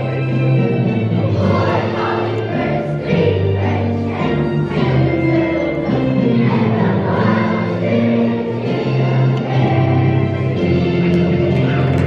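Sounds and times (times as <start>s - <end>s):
children's choir singing: 0.0s - 12.0s
musical accompaniment: 0.0s - 12.0s.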